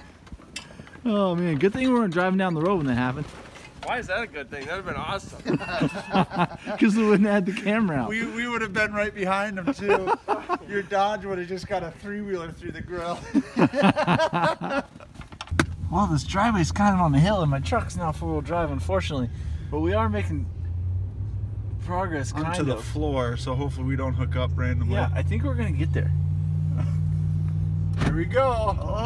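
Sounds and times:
men laughing: 0:05.2 - 0:11.2, 0:13.0 - 0:15.4, 0:26.6 - 0:27.2, 0:28.4 - 0:29.0
low engine hum: 0:15.5 - 0:29.0.

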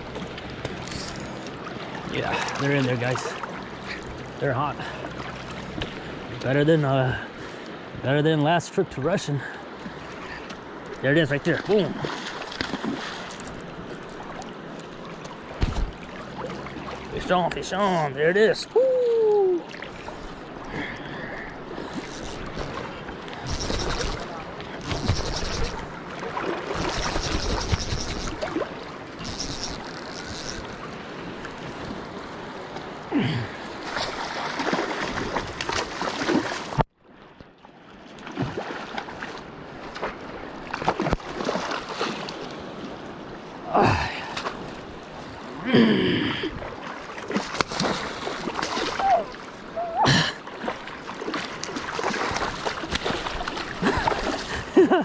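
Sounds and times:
river water rushing and splashing: 0:00.0 - 0:45.8, 0:46.5 - 0:55.0
person gasping: 0:33.1 - 0:33.6, 0:43.8 - 0:44.4, 0:45.6 - 0:46.6, 0:49.9 - 0:50.4.

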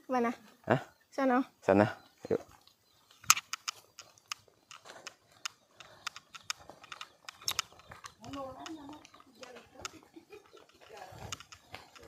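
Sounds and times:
footsteps on dirt path: 0:01.8 - 0:12.0.

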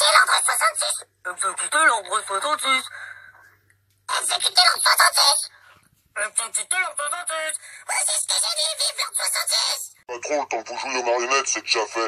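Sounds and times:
high-pitched altered character voices: 0:00.0 - 0:01.1, 0:04.1 - 0:05.5, 0:06.2 - 0:10.0.

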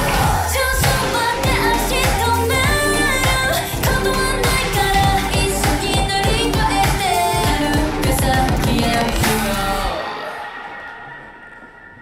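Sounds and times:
pop song with female vocals: 0:00.0 - 0:10.8.

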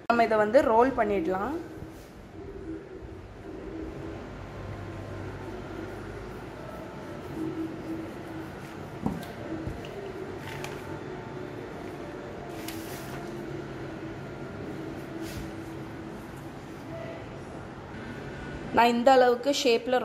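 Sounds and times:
faint steady hum: 0:00.0 - 0:19.7
rolling pin rolling dough: 0:03.5 - 0:16.4.

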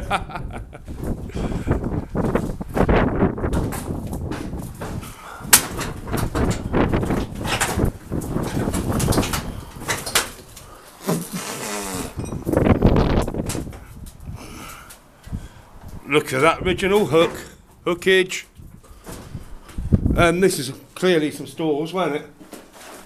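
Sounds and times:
wind buffeting microphone: 0:00.0 - 0:10.7, 0:12.1 - 0:17.0, 0:17.7 - 0:20.5.

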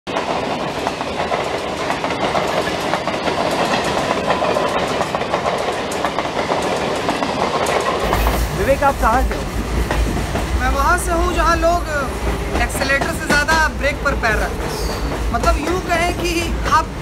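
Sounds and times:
train rushing past: 0:00.1 - 0:17.0.

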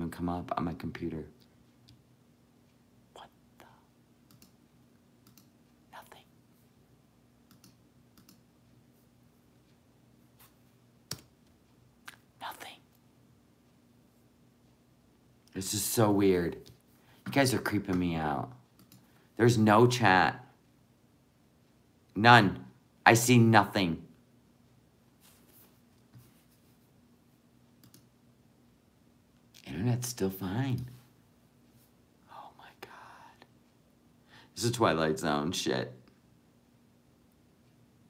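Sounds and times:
faint steady hum: 0:00.0 - 0:38.0
computer mouse clicks: 0:04.3 - 0:04.6, 0:05.2 - 0:05.5, 0:07.5 - 0:08.4, 0:27.8 - 0:28.1.

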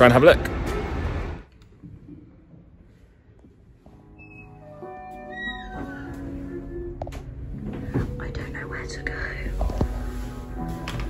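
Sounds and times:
hushed whispering: 0:08.2 - 0:09.8.

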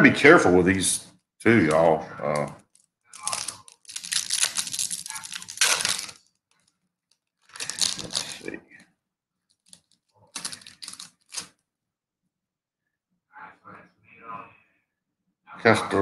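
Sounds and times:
foil wrapper crinkling: 0:02.2 - 0:08.6, 0:09.5 - 0:11.6.

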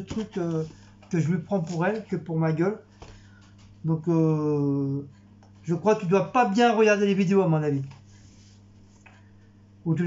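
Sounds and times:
man talking: 0:00.0 - 0:02.8, 0:03.8 - 0:08.0
steady low hum: 0:00.0 - 0:10.0.

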